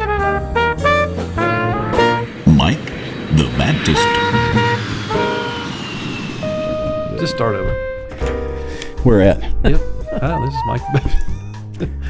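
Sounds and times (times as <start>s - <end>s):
brass horn jingle: 0.0s - 2.3s
faint tone falling in pitch: 2.0s - 8.2s.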